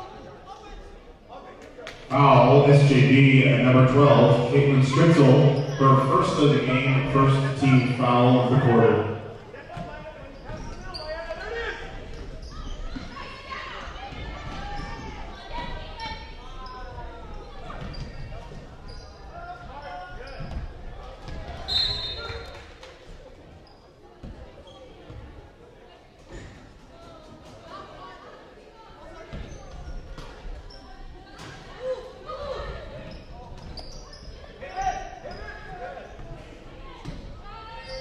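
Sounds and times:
voices echoing in gym: 0.0s - 38.0s
referee's whistle: 21.7s - 22.5s.

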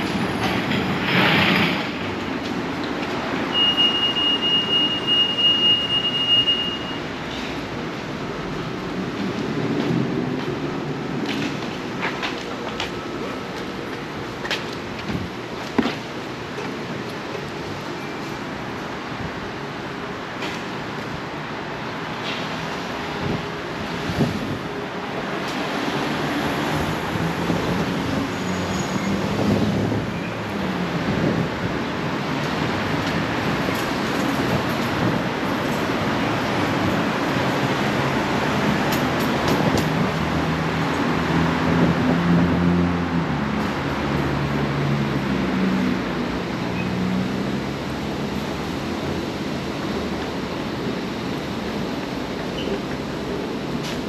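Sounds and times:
passing vehicles rumbling: 0.0s - 5.4s, 7.0s - 54.0s.

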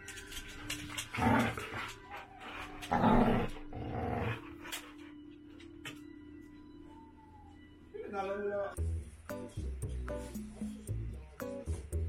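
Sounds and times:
dog growling: 1.0s - 2.1s, 2.8s - 4.9s.

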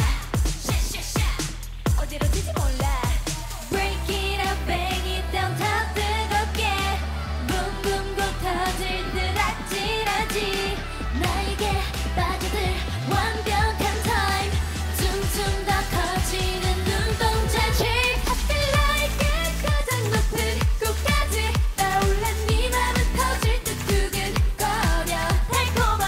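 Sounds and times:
dance-pop backing track: 0.0s - 26.0s
female vocals singing: 0.0s - 26.0s.

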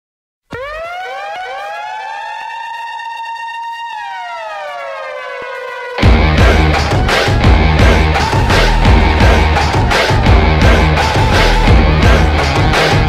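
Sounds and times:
siren-like rising wail: 0.5s - 13.0s
music: 6.0s - 13.0s.

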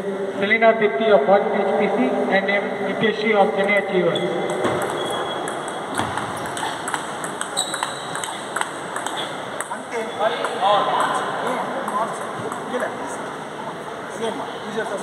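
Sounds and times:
table tennis ball clicking: 4.4s - 11.2s.

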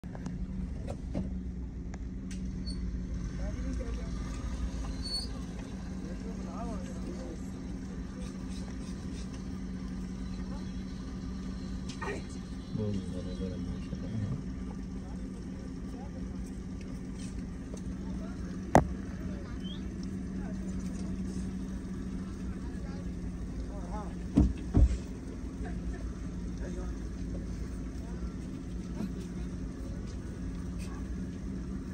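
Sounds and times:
car engine running: 0.0s - 31.9s.

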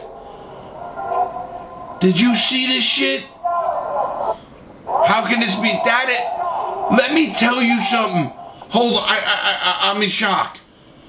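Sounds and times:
indoor background noise: 0.0s - 11.0s
muffled distant voices: 0.9s - 8.9s.

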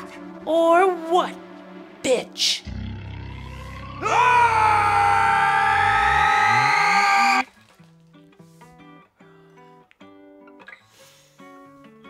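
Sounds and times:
low musical drone: 0.0s - 5.5s
men screaming: 3.6s - 7.4s.

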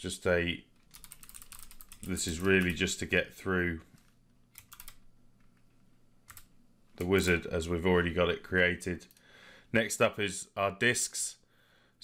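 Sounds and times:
faint keyboard keystrokes: 3.9s - 7.2s.

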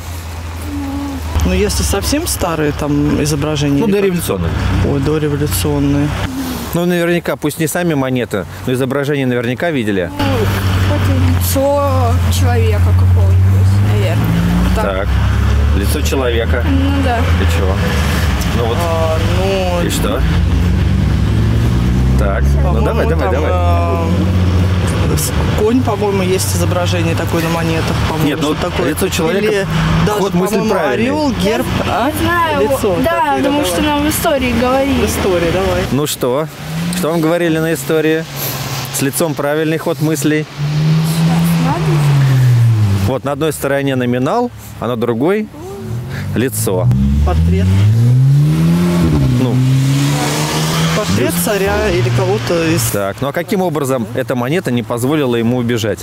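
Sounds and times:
engine revving: 0.0s - 7.1s, 9.7s - 43.8s, 45.5s - 54.2s
road traffic rumble: 0.0s - 56.0s.

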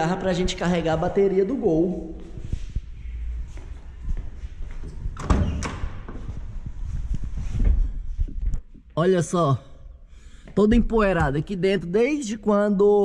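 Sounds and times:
footsteps: 0.3s - 8.9s.

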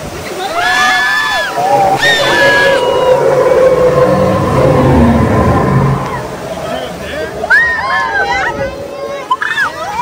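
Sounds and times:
boat rumbling: 0.0s - 10.0s
rushing water: 0.0s - 10.0s
riders screaming: 0.4s - 8.5s.

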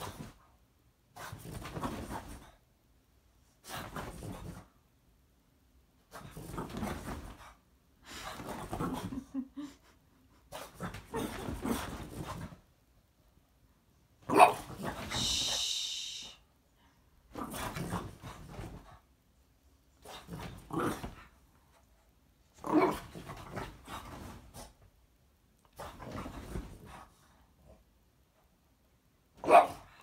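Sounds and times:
dog barking: 14.3s - 14.7s, 29.4s - 29.9s
dog hissing noise: 14.9s - 16.5s.

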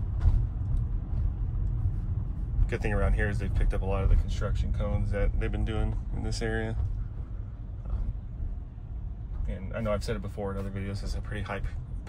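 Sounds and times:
road and tyre rumble: 0.0s - 12.0s.

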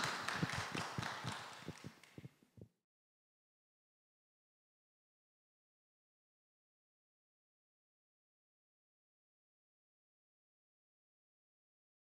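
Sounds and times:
small audience clapping: 0.0s - 2.3s.

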